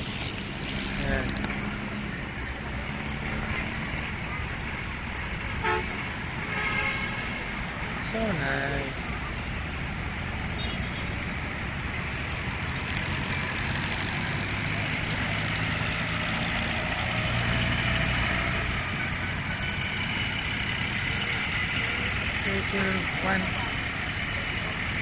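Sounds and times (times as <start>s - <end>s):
cars driving past and idling: 0.0s - 25.0s
low engine rumble: 7.3s - 25.0s
murmur of voices: 18.4s - 25.0s.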